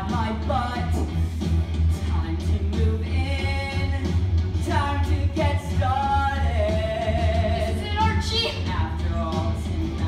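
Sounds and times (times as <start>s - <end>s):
musical theatre singing: 0.0s - 10.0s.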